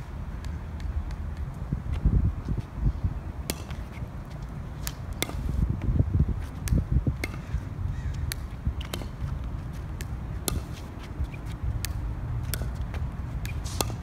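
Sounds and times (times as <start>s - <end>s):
wind rumbling on microphone: 0.0s - 14.0s.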